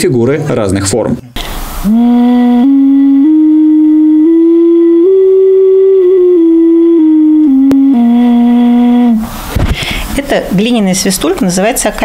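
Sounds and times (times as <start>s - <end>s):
ocarina playing slow tune: 1.8s - 9.3s.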